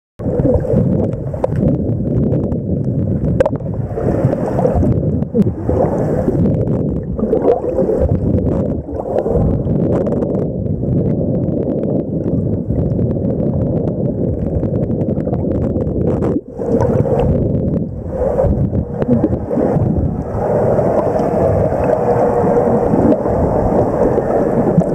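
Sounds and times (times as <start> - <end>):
underwater rumble of water: 0.2 - 24.9.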